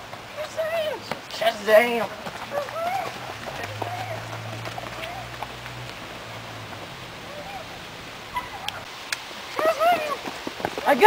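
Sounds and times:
running footsteps on mulch and concrete: 0:00.0 - 0:11.0.

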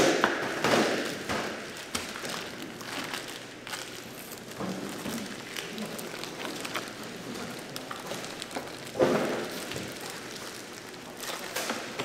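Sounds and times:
plastic bags rustling: 0:00.8 - 0:12.0.

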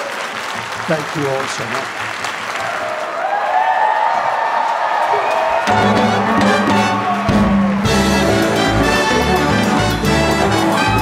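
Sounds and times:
audience applauding: 0:00.0 - 0:11.0
brass orchestra playing: 0:05.6 - 0:11.0.

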